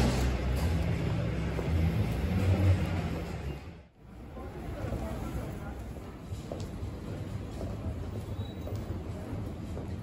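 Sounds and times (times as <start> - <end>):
vehicle engine rumble: 0.0 - 4.0.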